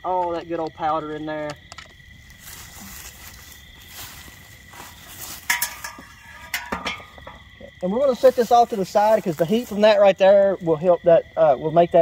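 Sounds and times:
high insect trill: 0:00.0 - 0:12.0
footsteps on grass: 0:02.2 - 0:10.7
metal pot clinks: 0:05.3 - 0:07.5.

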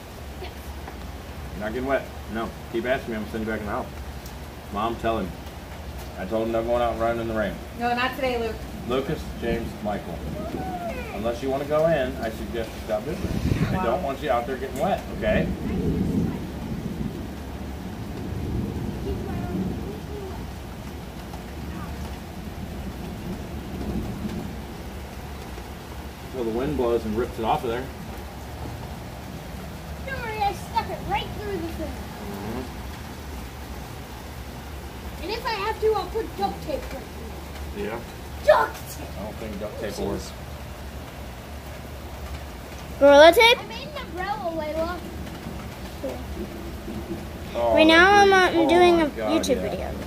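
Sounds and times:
low continuous rumble: 0:00.0 - 0:50.0
steady rain falling: 0:00.0 - 0:50.0
even hiss: 0:08.9 - 0:15.4.

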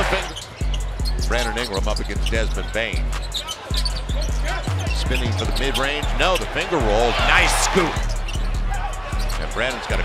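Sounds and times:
music with deep bass: 0:00.0 - 0:10.0.

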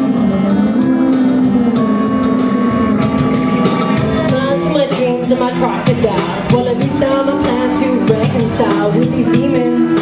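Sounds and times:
rap backing beat: 0:00.0 - 0:10.0.

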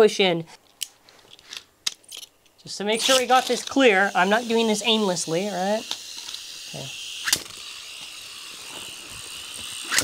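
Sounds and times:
spinning top whirring on foam: 0:03.0 - 0:10.0.

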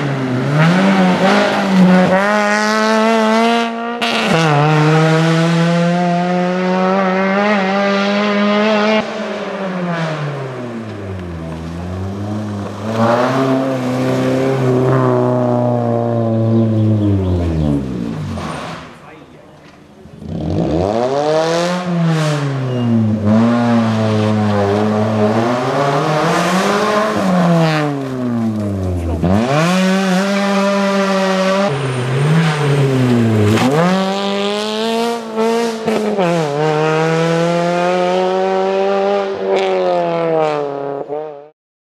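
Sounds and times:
rally car engine revving: 0:00.0 - 0:41.5.

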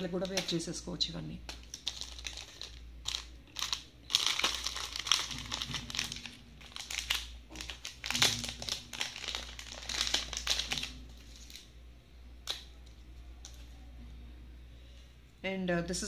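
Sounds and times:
plastic packets crinkling: 0:00.0 - 0:11.7, 0:12.4 - 0:13.7.

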